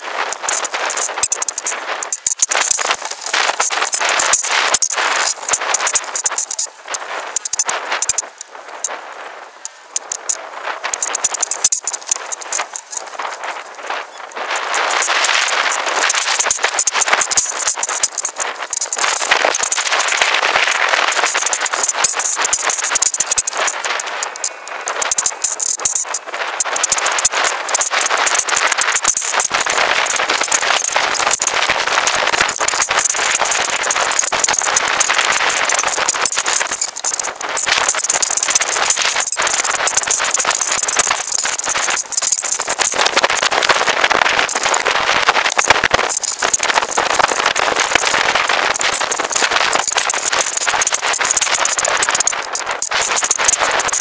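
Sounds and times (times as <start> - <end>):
leaves and twigs scraping camera: 0.2 - 8.4, 9.6 - 51.3.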